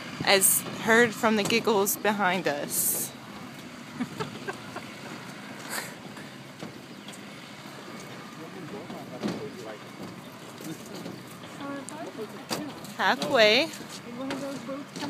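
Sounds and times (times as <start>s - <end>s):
outdoor background noise: 0.0s - 15.0s
faint voices: 0.1s - 15.0s.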